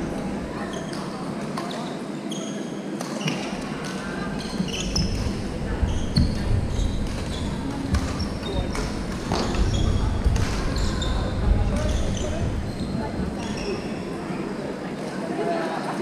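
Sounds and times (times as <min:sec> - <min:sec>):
distant voices: 0:03.5 - 0:15.2
shoes squeaking on floor: 0:04.4 - 0:14.2.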